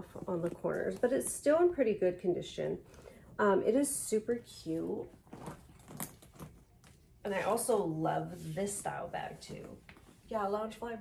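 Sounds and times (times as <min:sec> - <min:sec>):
handbag rustling: 0:04.6 - 0:07.7
handbag hardware clicks: 0:05.3 - 0:06.9.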